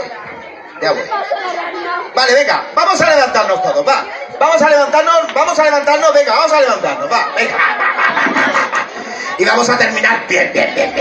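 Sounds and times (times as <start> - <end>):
voices chattering: 0.0 - 11.0
man talking: 2.2 - 7.7, 9.3 - 10.8.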